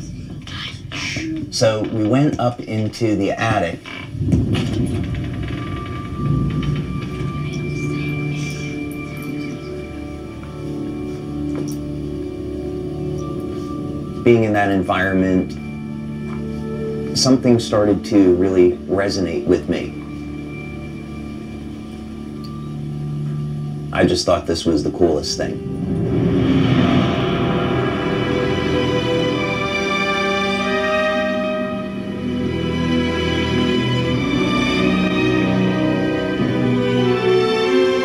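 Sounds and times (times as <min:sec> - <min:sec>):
low rumbling drone: 0:00.0 - 0:38.0
soft sustained low film score: 0:00.0 - 0:38.0
thin high held tone: 0:04.1 - 0:32.9.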